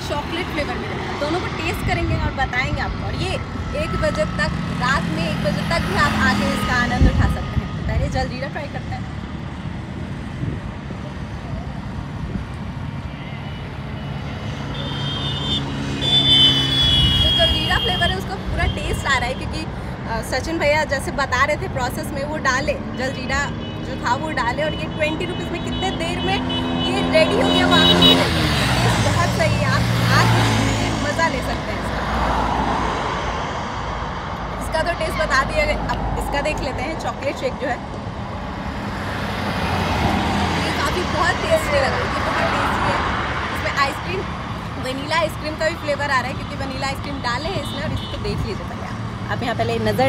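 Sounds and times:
vehicle engine hum passing: 0.0s - 20.1s, 20.8s - 50.0s.

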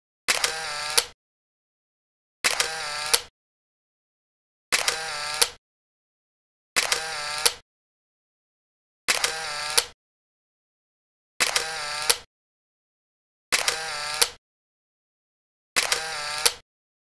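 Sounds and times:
camera shutter click and whirr: 0.3s - 1.2s, 2.4s - 3.3s, 4.7s - 5.6s, 6.8s - 7.6s, 9.1s - 10.0s, 11.4s - 12.3s, 13.5s - 14.4s, 15.8s - 16.6s.

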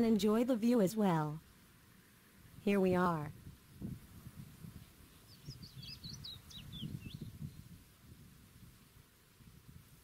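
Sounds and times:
songbird singing high chirps: 4.7s - 7.8s.

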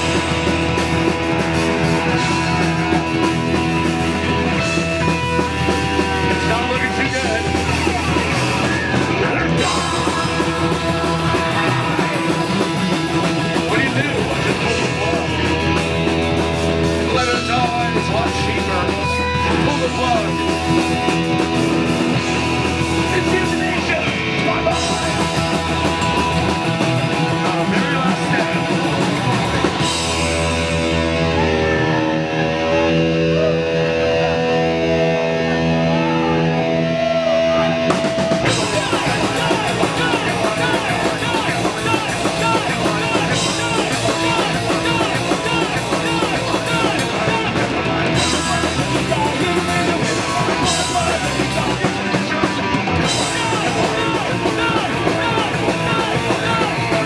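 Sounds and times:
drum kit: 0.0s - 57.0s
electric bass: 0.0s - 57.0s
electric guitar: 0.0s - 57.0s
person singing: 4.5s - 15.9s, 35.6s - 57.0s.

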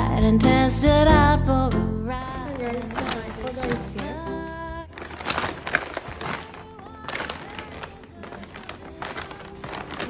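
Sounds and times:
background music: 0.0s - 10.0s
paper bag rustling and crinkling: 2.4s - 10.0s.

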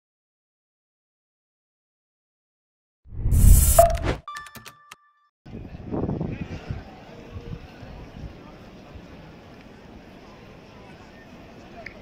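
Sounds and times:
whoosh: 3.1s - 4.2s
background voices outdoors: 5.5s - 12.0s.

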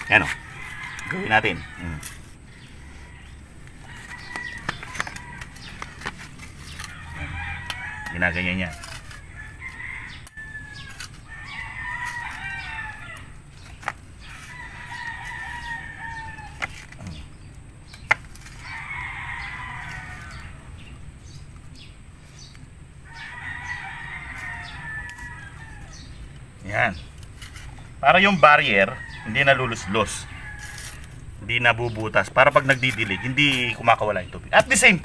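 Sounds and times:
rooster crowing: 0.0s - 13.5s, 14.2s - 16.9s, 18.5s - 20.9s, 23.0s - 26.3s, 27.6s - 31.4s
trowel clicking in soil: 8.6s - 9.3s.

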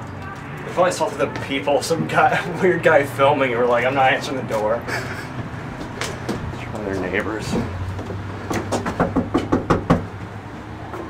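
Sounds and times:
knuckles knocking on door: 8.5s - 10.1s.

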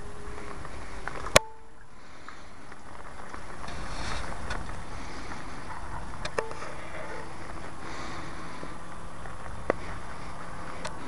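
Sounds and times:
distant model plane propeller drone: 0.0s - 11.0s
wind rumbling on microphone: 0.0s - 11.0s.

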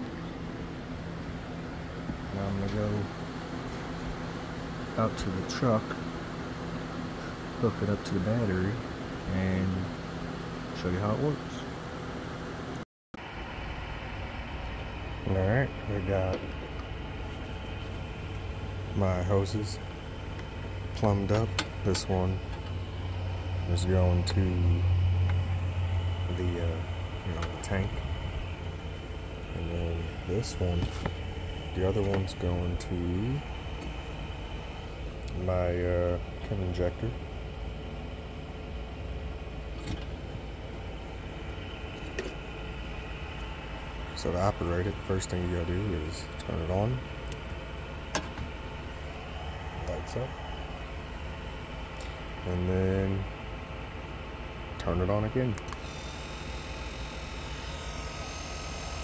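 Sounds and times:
low outdoor rumble: 0.0s - 55.9s.

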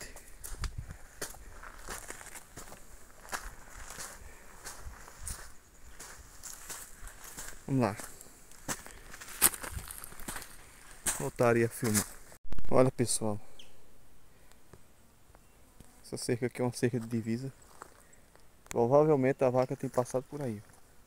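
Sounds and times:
footsteps crunching on stony trail: 0.0s - 12.4s, 17.0s - 18.4s.

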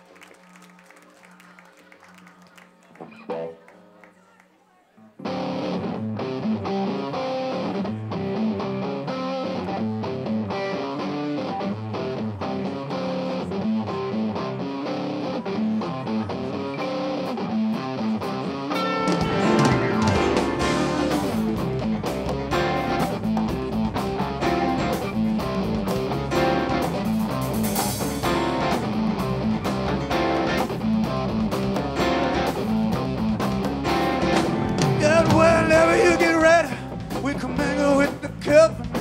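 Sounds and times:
rock band playing: 5.2s - 39.0s.

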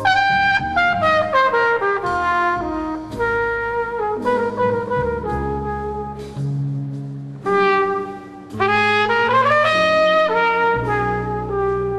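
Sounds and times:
brass horn playing jazz ballad: 0.0s - 11.9s
double bass: 0.0s - 11.9s
piano: 0.0s - 11.9s.

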